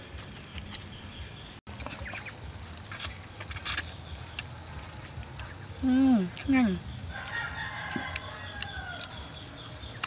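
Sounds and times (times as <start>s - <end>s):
rooster crowing: 7.1s - 9.3s.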